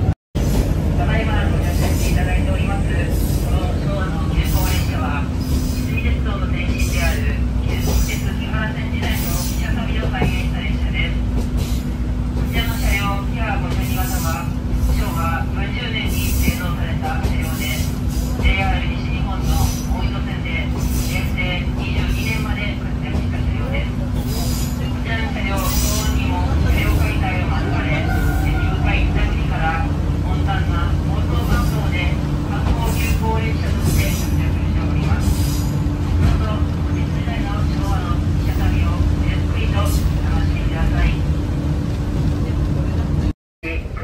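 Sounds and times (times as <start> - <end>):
diesel railcar engine drone: 0.0 - 44.0.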